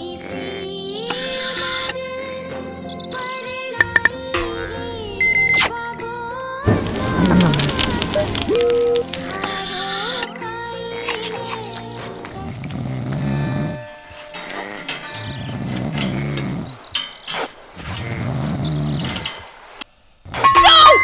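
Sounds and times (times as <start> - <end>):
light background music: 0.0 - 16.6
deep growling voice sounds: 6.6 - 8.6, 12.4 - 16.8
cartoon outburst with falling pitch: 20.4 - 21.0.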